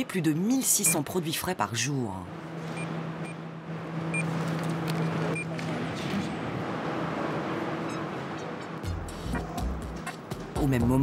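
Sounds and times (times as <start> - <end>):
steady low hum: 0.0 - 10.4.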